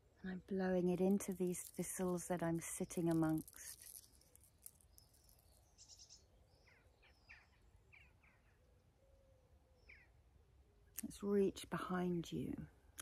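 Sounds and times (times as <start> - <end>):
faint bird chirps: 3.4 - 11.0.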